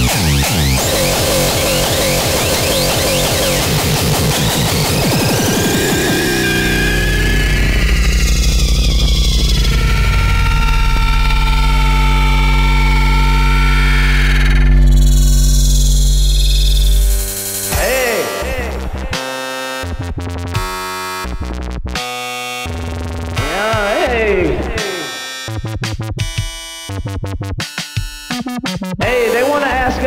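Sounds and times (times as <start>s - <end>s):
sustained deep bass note: 0.0s - 19.2s, 22.7s - 25.0s
steady synth tones: 0.0s - 20.0s
distorted synth with rising sweep: 0.0s - 21.8s.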